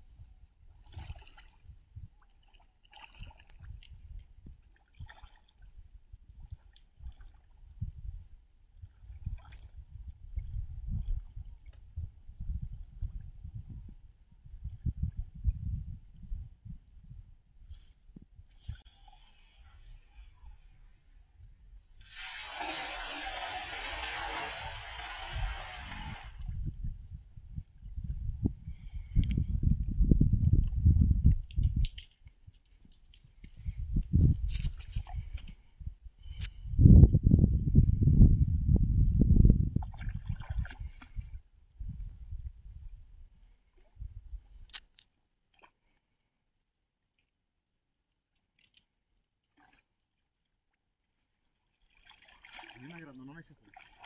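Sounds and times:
net splashing on water: 22.0s - 26.5s, 51.8s - 54.0s.

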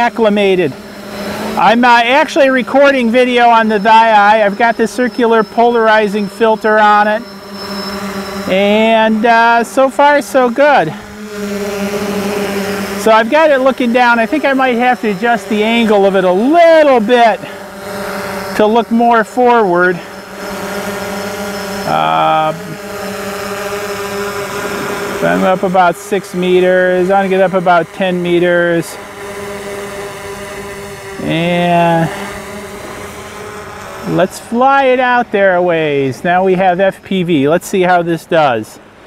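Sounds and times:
drone motors humming: 0.0s - 39.0s.

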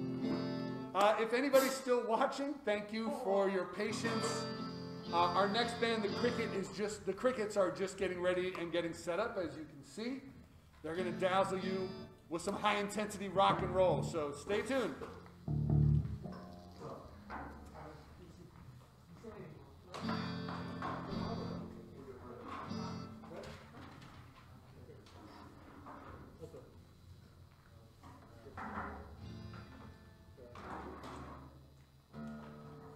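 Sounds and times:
guitar strums: 0.0s - 1.0s, 3.8s - 6.8s, 10.9s - 12.7s, 13.3s - 17.1s, 20.0s - 23.3s, 29.0s - 30.3s, 32.1s - 32.9s.

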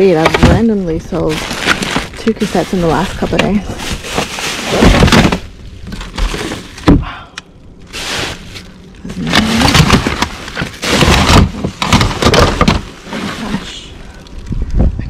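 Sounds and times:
plastic bags rustling: 0.0s - 7.0s, 7.8s - 14.4s
hard plastic cases knocking: 3.3s - 7.0s, 9.3s - 12.9s.

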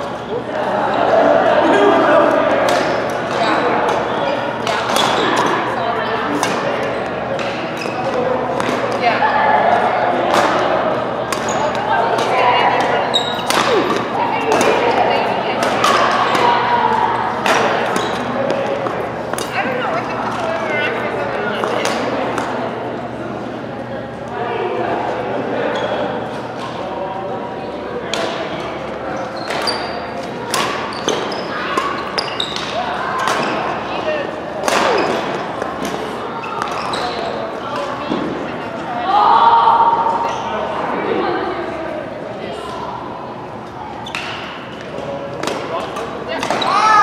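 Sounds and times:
voices: 0.0s - 47.0s
rackets hitting shuttlecock: 11.3s - 15.0s, 15.6s - 16.6s, 30.4s - 33.7s, 34.6s - 38.4s, 44.1s - 46.8s.

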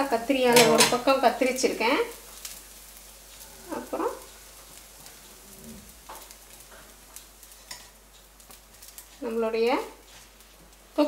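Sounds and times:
faint sizzling in a pan: 0.0s - 11.0s
spatula tapping a pan: 0.5s - 1.1s.

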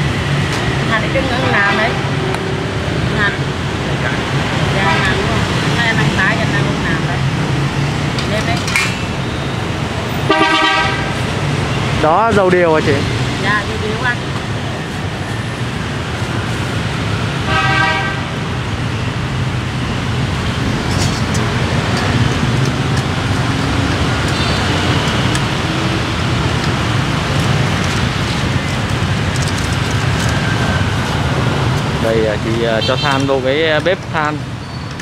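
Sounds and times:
traffic rumble: 0.0s - 35.0s
vehicle horn honking: 10.2s - 11.2s, 17.5s - 18.4s, 24.3s - 25.0s, 32.7s - 33.3s.

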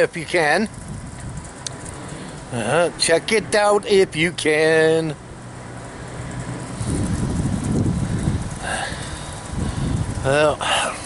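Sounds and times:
wind buffeting microphone: 0.0s - 4.7s, 6.1s - 11.0s.

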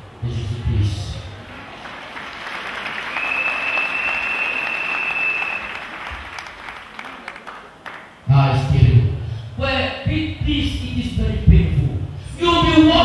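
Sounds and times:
congregation applauding: 1.4s - 8.2s.

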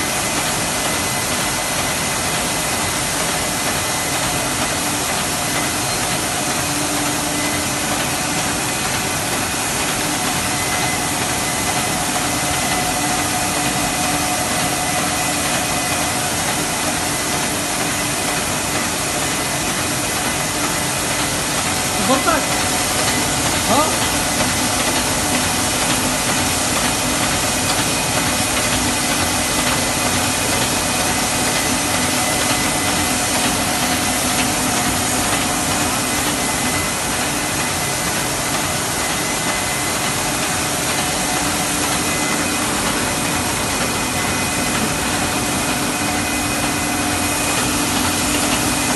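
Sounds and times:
factory machinery and conveyors running: 0.0s - 48.9s.

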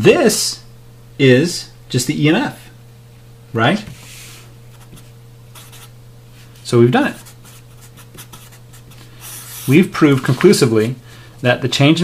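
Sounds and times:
low steady hum: 0.0s - 12.0s
marker writing on paper: 4.8s - 5.9s, 7.2s - 9.8s.

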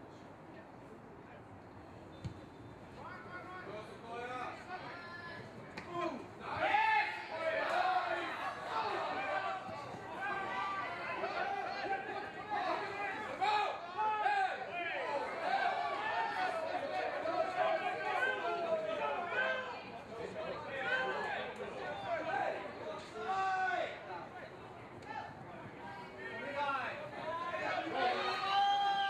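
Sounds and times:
voices calling and talking: 0.0s - 29.0s.

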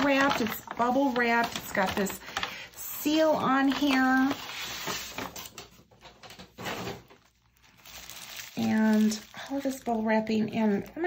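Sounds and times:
bubble wrap crinkling: 0.0s - 5.5s, 6.7s - 11.0s.

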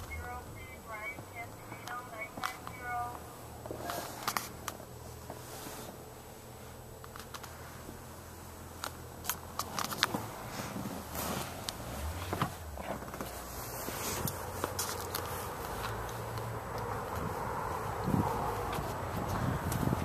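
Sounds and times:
steady low hum: 0.0s - 20.0s
handheld camera clicks and rustles: 3.7s - 6.0s, 7.0s - 7.6s, 8.8s - 10.3s, 11.6s - 17.3s.

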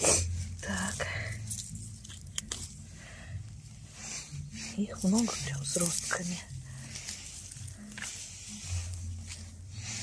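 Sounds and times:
dry grass and leaves rustling: 0.3s - 10.0s.

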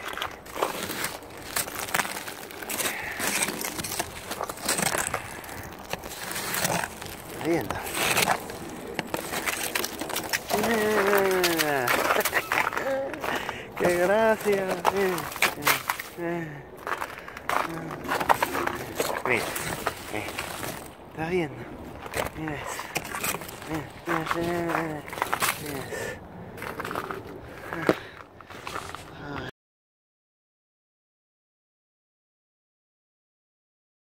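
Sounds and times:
snow brush scraping crusted ice: 0.1s - 16.3s, 17.6s - 20.9s, 22.0s - 26.0s
short crackles: 0.1s - 29.1s
man talking: 6.6s - 8.3s, 10.5s - 16.7s, 17.5s - 22.9s, 23.6s - 26.2s
person saying ooh: 10.5s - 11.9s, 29.2s - 29.5s.

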